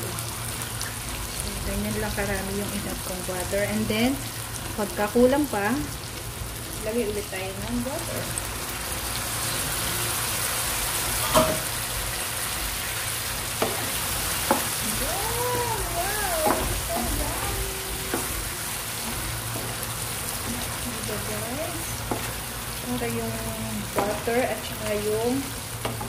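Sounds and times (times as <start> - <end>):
food sizzling in a frying pan: 0.0 - 26.0
wooden spoon knocking pan: 16.3 - 18.4, 23.9 - 24.3.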